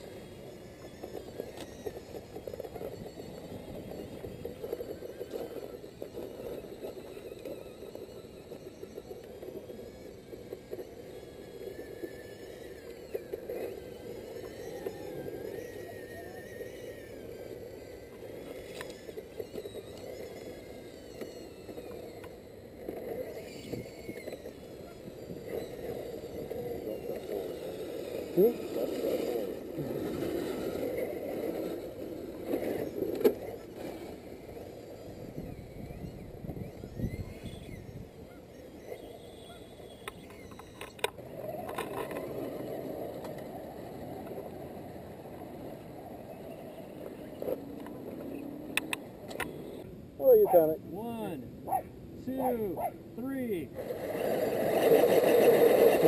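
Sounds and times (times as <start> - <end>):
small electric motor whining: 0.0 - 56.0.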